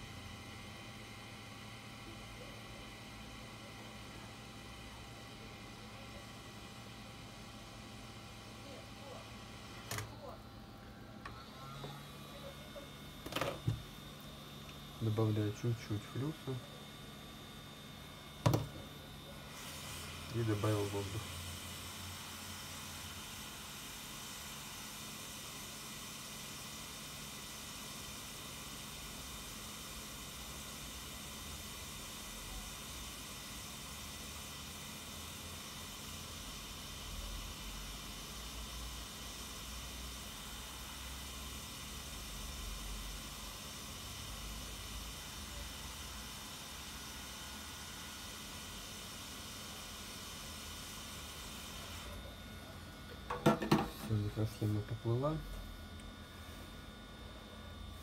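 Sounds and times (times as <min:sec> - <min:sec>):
hot air station hissing: 0:11.0 - 0:55.6.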